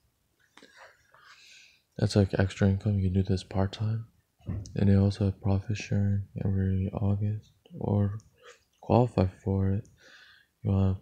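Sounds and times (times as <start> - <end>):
man speaking: 2.0 - 4.1, 4.7 - 8.2, 8.8 - 9.9, 10.6 - 11.0.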